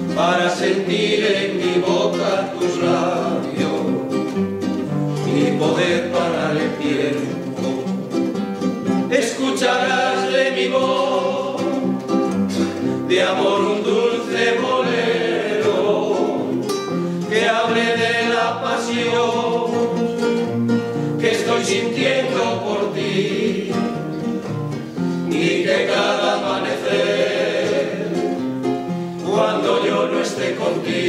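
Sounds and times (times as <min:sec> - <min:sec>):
male vocal group singing: 0:00.0 - 0:04.3, 0:05.2 - 0:08.0, 0:09.1 - 0:20.4, 0:21.2 - 0:24.0, 0:25.3 - 0:28.4, 0:29.2 - 0:31.0
acoustic guitars: 0:00.0 - 0:31.0.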